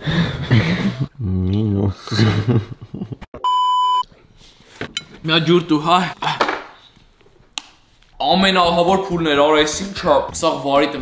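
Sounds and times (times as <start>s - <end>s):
electronic bleep: 3.4s - 4.0s.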